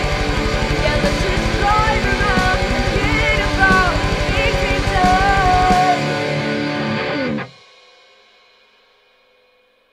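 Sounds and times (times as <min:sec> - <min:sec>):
rock band with guitar and drums: 0:00.0 - 0:07.7.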